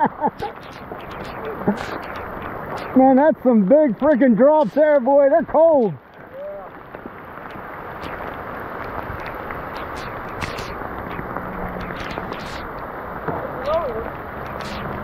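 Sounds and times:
heavy rain on river: 0.0 - 15.0.

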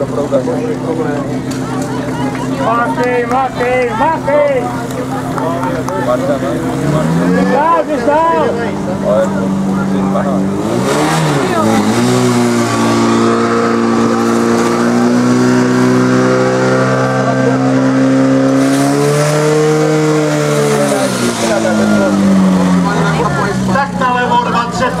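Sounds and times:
fire pump engine revving: 0.0 - 25.0.

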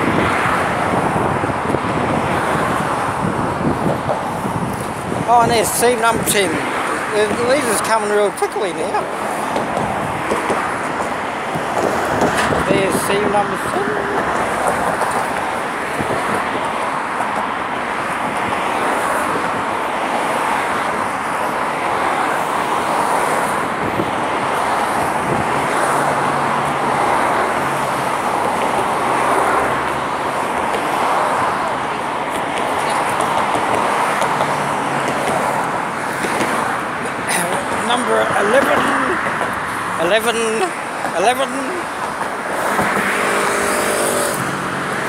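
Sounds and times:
cars passing close by: 0.0 - 45.0.

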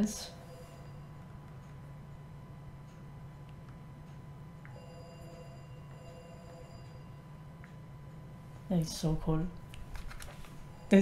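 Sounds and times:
faint high electronic tone: 0.0 - 1.7, 4.7 - 7.5, 10.6 - 11.0
low electrical hum: 0.0 - 11.0.

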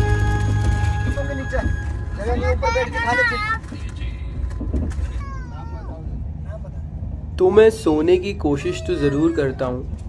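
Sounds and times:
passenger train rumbling: 0.0 - 10.0
child calling out: 8.6 - 9.7.

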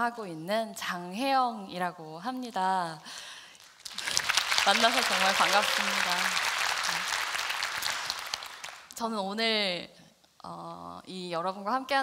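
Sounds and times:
audience applauding: 3.6 - 9.0.

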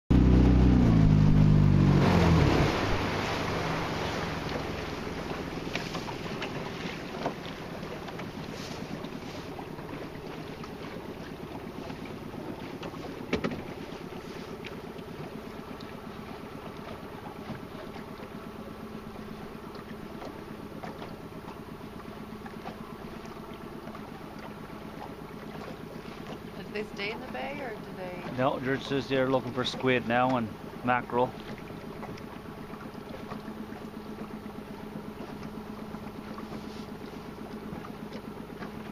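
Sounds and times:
boat motor running: 0.1 - 38.9
faint wind: 0.1 - 38.9
water noise: 0.1 - 38.9.

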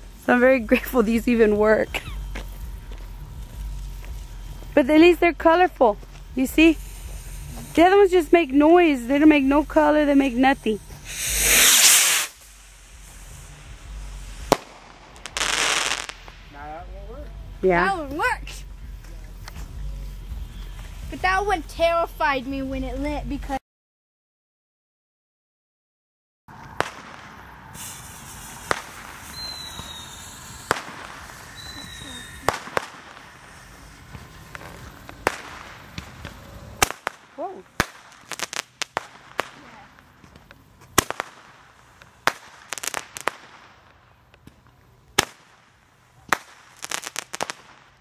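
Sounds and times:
firework hissing whoosh: 0.0 - 21.6, 26.5 - 43.9, 45.1 - 48.0.

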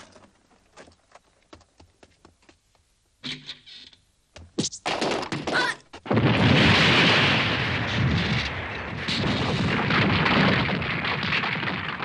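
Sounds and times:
explosion crashing and crackling: 6.0 - 12.0.

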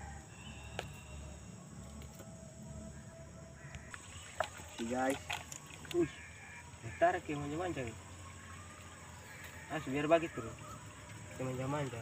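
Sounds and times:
high insect buzz: 0.0 - 12.0.

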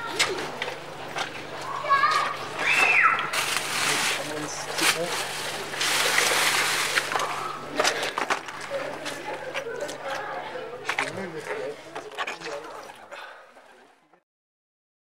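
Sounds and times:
water splashing: 4.8 - 7.6.

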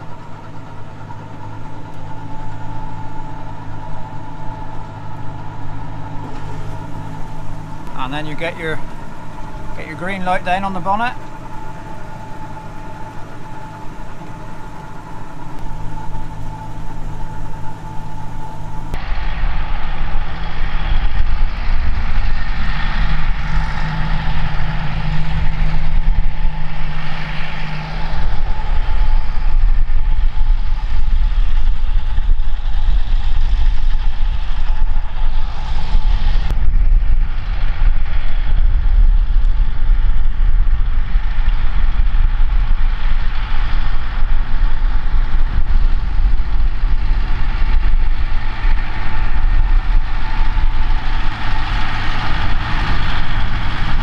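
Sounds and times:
fertiliser spreader rumble and hiss: 0.0 - 54.0
tractor engine running: 0.0 - 54.0.

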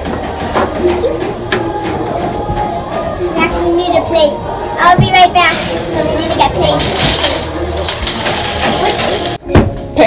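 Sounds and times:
wire toy cart rattling: 6.4 - 9.4.

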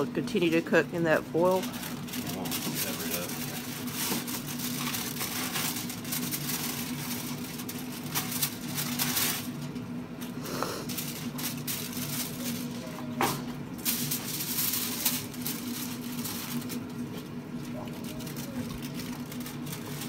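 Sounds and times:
aluminium foil crinkling: 0.1 - 20.0.

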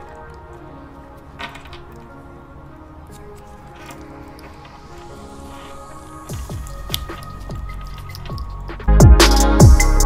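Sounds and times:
electronic background music: 0.0 - 10.0.

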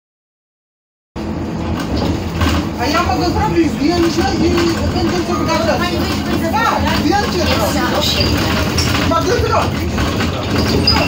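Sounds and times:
bus engine rumble: 1.2 - 11.0
people's voices: 2.8 - 11.0.

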